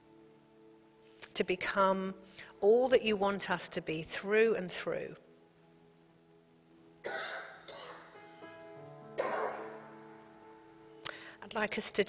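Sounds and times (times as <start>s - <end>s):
soft sustained keyboard chord: 0.0s - 12.0s
person coughing: 7.1s - 8.1s, 9.2s - 9.7s.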